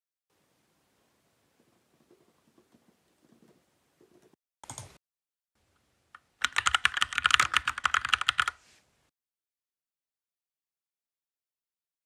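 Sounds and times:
laptop keyboard typing: 4.6s - 5.0s, 6.2s - 8.6s.

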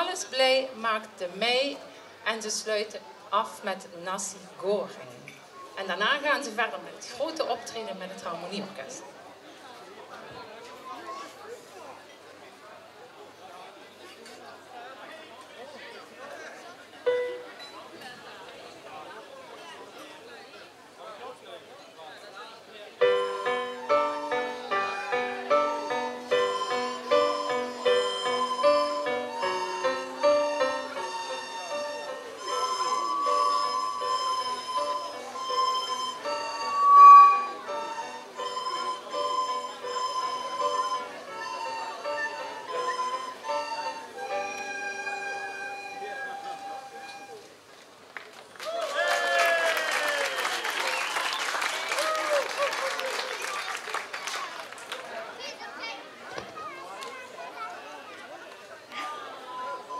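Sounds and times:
recorder ensemble playing: 23.0s - 47.4s, 59.4s - 59.9s
applause: 48.1s - 55.4s.

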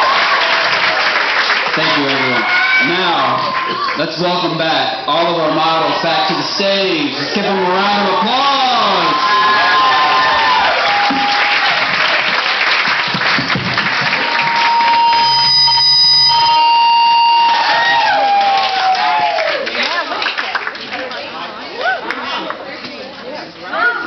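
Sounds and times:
audience applauding and cheering: 0.0s - 21.2s.

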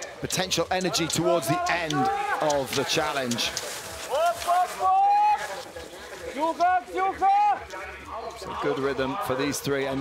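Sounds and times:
spectators shouting encouragement: 0.0s - 10.0s.

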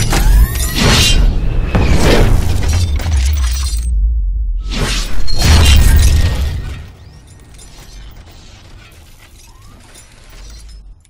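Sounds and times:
loud hit: 1.2s - 6.9s
shattering crash: 1.7s - 3.9s, 5.1s - 10.8s
deep bass drone: 2.4s - 4.7s.

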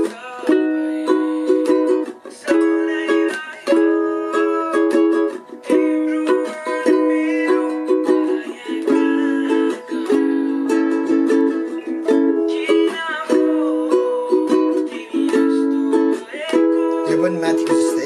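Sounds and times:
ukulele strumming chords: 0.0s - 18.0s.

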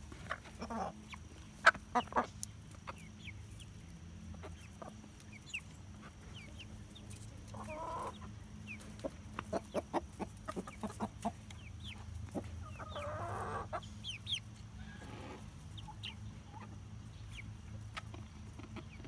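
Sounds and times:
hens clucking: 0.0s - 19.0s.

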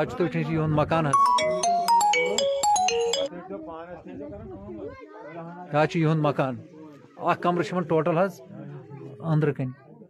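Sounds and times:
mobile phone ringtone: 1.1s - 3.3s.

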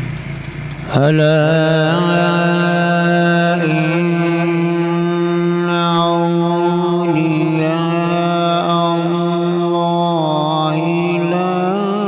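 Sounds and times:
man reciting melodically: 0.8s - 12.0s.

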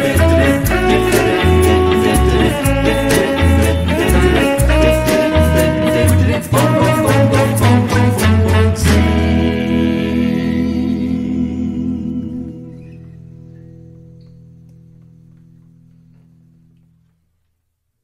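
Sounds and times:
doo-wop band closing chord: 0.0s - 14.1s.

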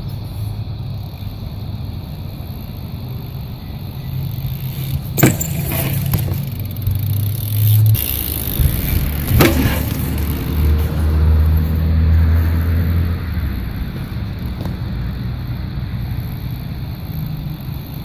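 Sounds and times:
bike rolling on concrete: 0.0s - 18.0s
bike knocking on concrete: 4.4s - 11.7s.

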